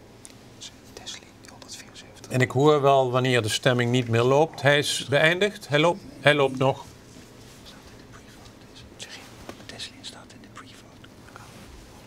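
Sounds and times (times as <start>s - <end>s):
faint whispering: 0.6s - 2.3s, 7.5s - 12.0s.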